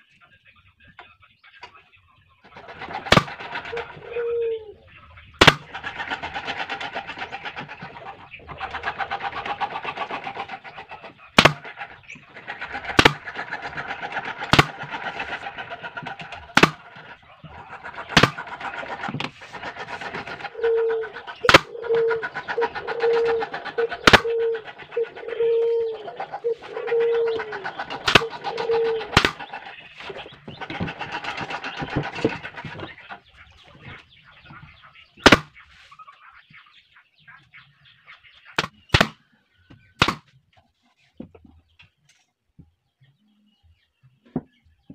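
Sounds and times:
dove cooing: 2.4s - 35.6s
nail gun shots into plywood: 3.1s - 3.4s, 5.4s - 5.7s, 11.4s - 11.6s, 13.0s - 13.2s, 14.5s - 14.8s, 16.5s - 16.8s, 18.2s - 18.4s, 21.5s - 21.7s, 24.0s - 24.3s, 28.1s - 28.3s, 29.2s - 29.4s, 35.2s - 35.5s, 38.6s - 39.2s, 40.0s - 40.3s.

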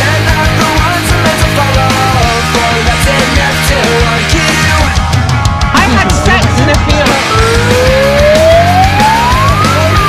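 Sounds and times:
heavy rock music: 0.0s - 10.0s
siren-like rising wail: 7.2s - 10.0s.

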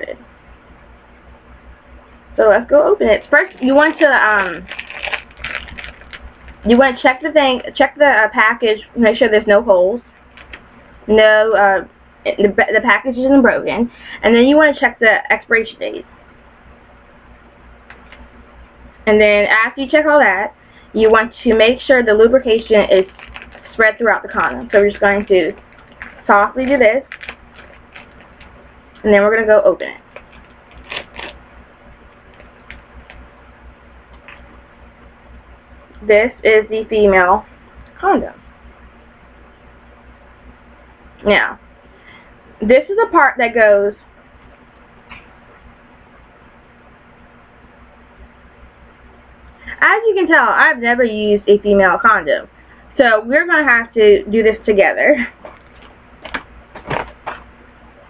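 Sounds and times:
wrapper tearing and rustling: 3.4s - 6.7s, 10.2s - 10.7s, 22.7s - 23.8s, 25.1s - 28.6s, 30.1s - 31.4s, 55.4s - 57.4s.

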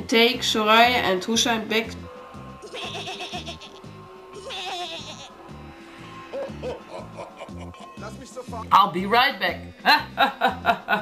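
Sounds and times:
goats bleating: 2.6s - 5.5s
music with bass beat: 5.5s - 8.8s.

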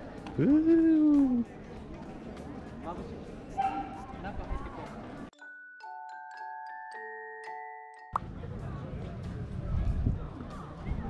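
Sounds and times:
people murmuring: 0.0s - 5.3s.

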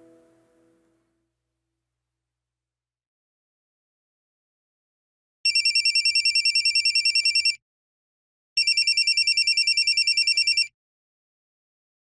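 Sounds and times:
mobile phone ringing: 5.4s - 7.6s, 8.6s - 10.7s.

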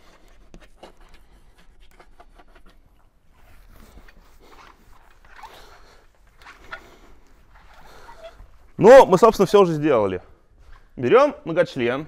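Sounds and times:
short squeaks: 4.5s - 8.6s.

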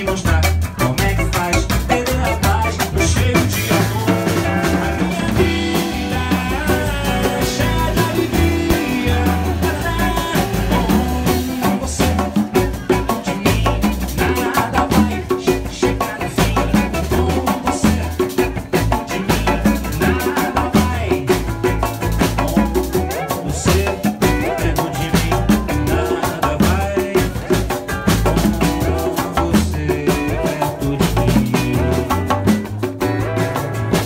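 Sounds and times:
acoustic guitar: 0.0s - 34.0s
double bass: 0.0s - 34.0s
drum kit rhythm: 0.0s - 34.0s.

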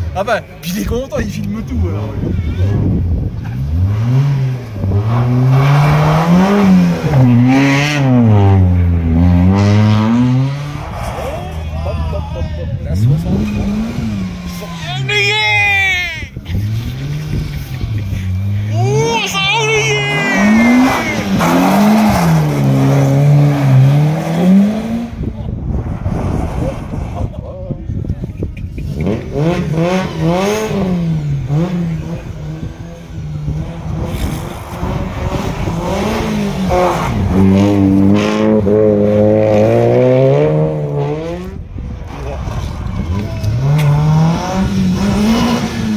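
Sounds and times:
rally car engines revving: 0.0s - 45.9s.

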